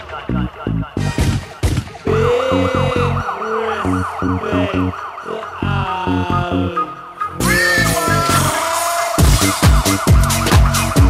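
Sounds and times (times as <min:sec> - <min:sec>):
heavy bass stabs: 0:00.0 - 0:06.8, 0:07.4 - 0:11.0
siren-like warbling synth: 0:00.0 - 0:11.0
held synth notes: 0:02.0 - 0:11.0.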